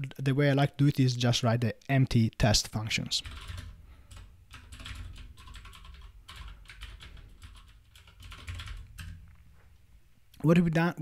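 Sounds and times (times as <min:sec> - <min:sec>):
faint low hum: 0:00.0 - 0:11.0
typing on computer keyboard: 0:03.2 - 0:09.3.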